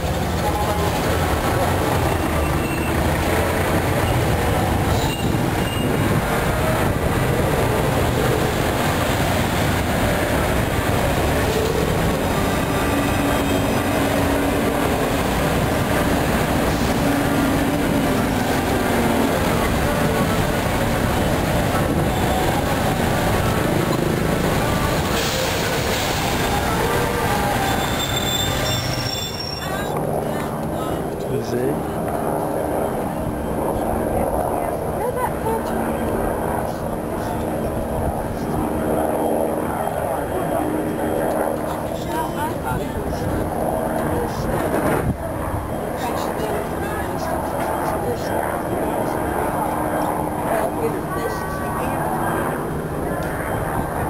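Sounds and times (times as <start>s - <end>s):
bus pulling away: 0.0s - 29.8s
cars passing: 0.0s - 54.0s.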